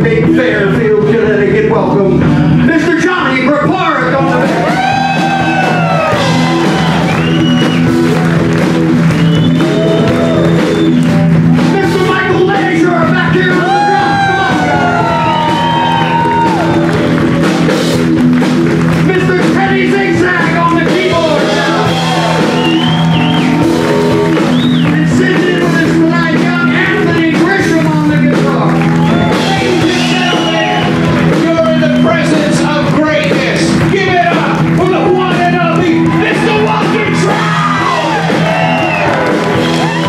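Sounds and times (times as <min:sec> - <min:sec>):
bass: 0:00.0 - 0:40.0
blues-rock band playing: 0:00.0 - 0:40.0
drums: 0:00.0 - 0:40.0
held chords: 0:00.0 - 0:40.0
electric guitar bending notes: 0:04.2 - 0:40.0.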